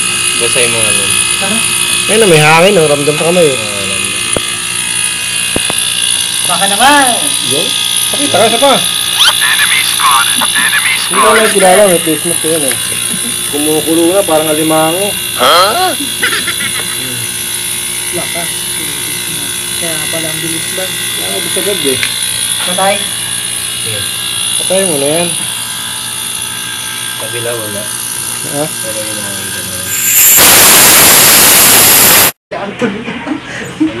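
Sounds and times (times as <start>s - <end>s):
high-pitched whining tones: 0.0s - 32.4s
mechanical hum: 0.0s - 34.0s
people talking: 0.4s - 4.2s, 6.5s - 17.3s, 18.2s - 22.0s, 23.8s - 25.5s, 27.2s - 29.9s, 32.5s - 34.0s.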